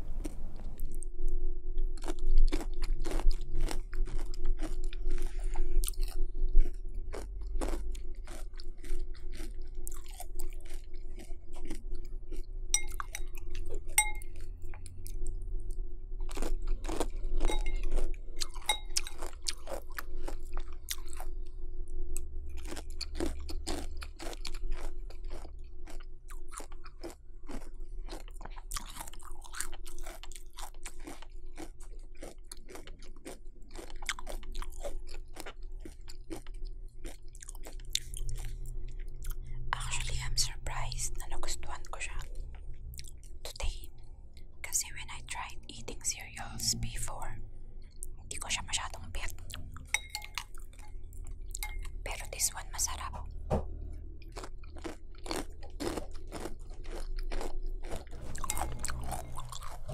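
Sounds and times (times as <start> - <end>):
chewing crunchy cereal: 1.8 - 59.9.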